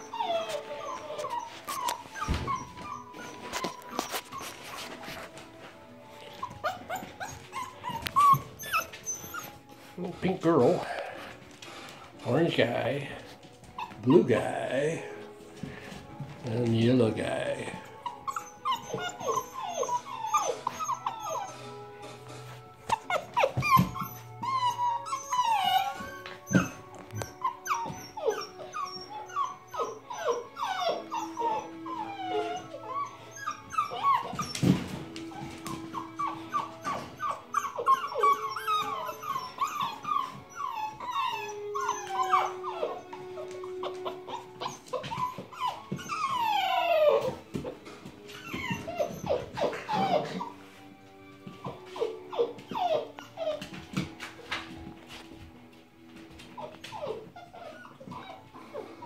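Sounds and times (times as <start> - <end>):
puppies whining and yipping: 0.0 - 59.0.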